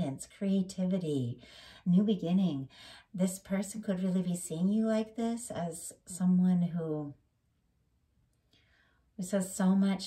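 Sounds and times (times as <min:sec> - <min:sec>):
woman speaking: 0:00.0 - 0:07.2, 0:09.2 - 0:10.0.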